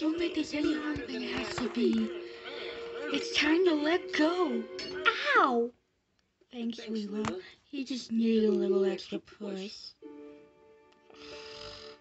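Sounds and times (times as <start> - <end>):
cartoon background music: 0.0 - 5.5, 10.0 - 12.0.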